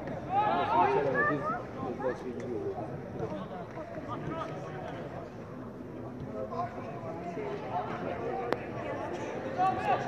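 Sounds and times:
indistinct people talking: 0:00.0 - 0:10.0.

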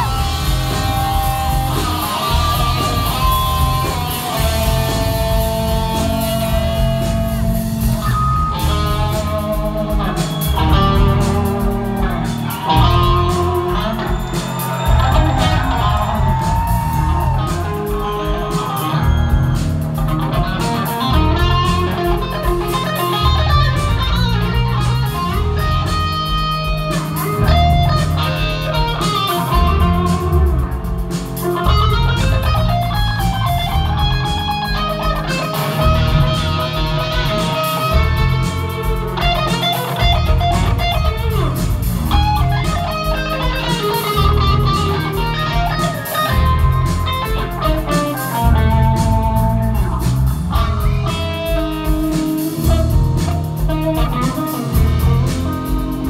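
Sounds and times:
bass: 0:00.0 - 0:56.0
drums: 0:00.0 - 0:56.0
electric guitar lead lines: 0:00.0 - 0:56.0.

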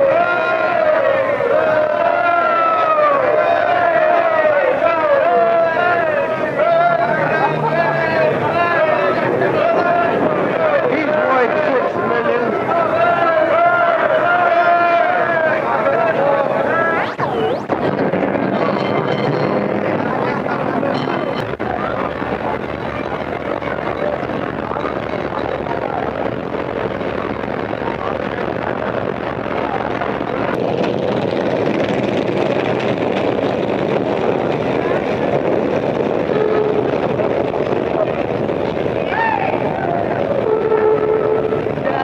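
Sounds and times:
crowd of voices talking: 0:00.0 - 0:42.0
street and traffic noise: 0:00.0 - 0:42.0.

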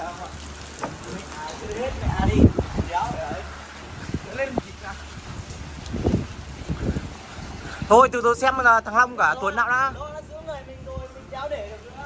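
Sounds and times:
wind buffeting microphone: 0:00.7 - 0:12.0.

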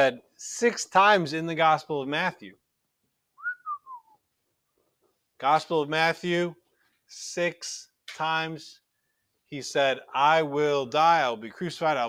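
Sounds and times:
whistled phrase: 0:03.4 - 0:04.2.

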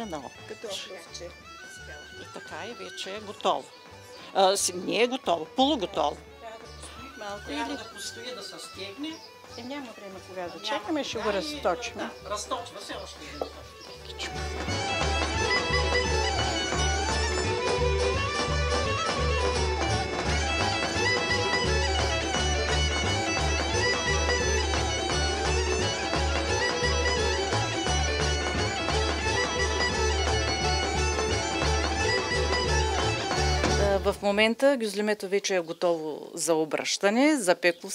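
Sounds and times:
bagpipe melody over drone: 0:00.0 - 0:33.8
low drum beat: 0:12.3 - 0:34.2.

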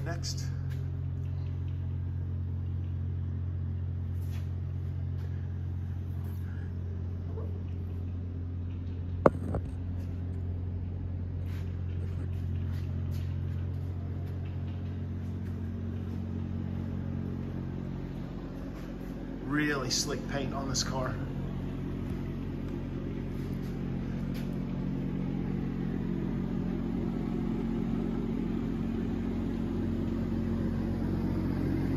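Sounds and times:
low droning hum: 0:00.0 - 0:31.9.

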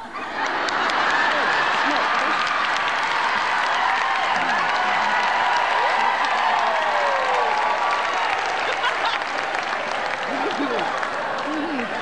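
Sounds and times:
audience applauding: 0:00.2 - 0:12.0.

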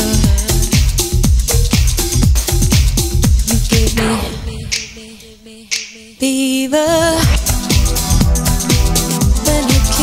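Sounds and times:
house music: 0:00.1 - 0:06.0.

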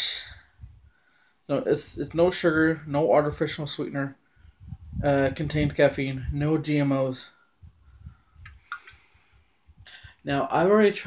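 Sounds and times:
soft hiss: 0:03.4 - 0:10.8.

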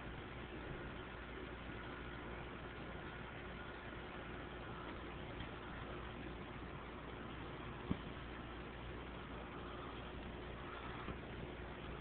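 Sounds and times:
faint thin steady tones: 0:00.0 - 0:12.0
low hum: 0:00.0 - 0:12.0
tape hiss: 0:00.0 - 0:12.0.

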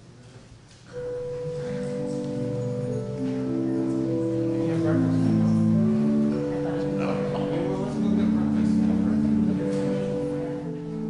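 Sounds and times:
church organ chord: 0:00.9 - 0:11.0.

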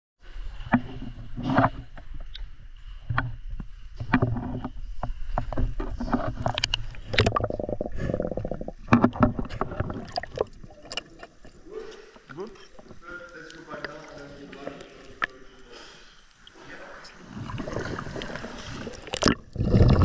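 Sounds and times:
water splashing against boat: 0:16.6 - 0:20.0.

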